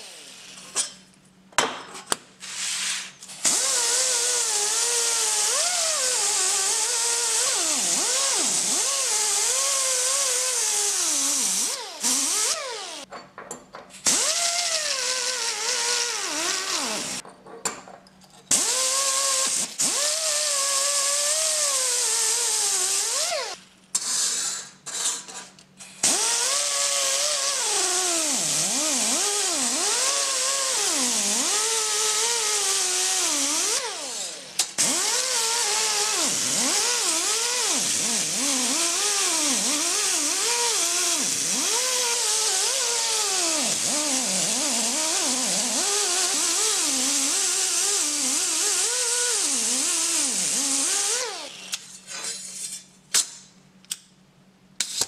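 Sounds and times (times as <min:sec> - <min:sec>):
die grinder whining on steel: 0:03.4 - 0:13.1, 0:14.1 - 0:17.2, 0:18.5 - 0:23.6, 0:26.0 - 0:51.8.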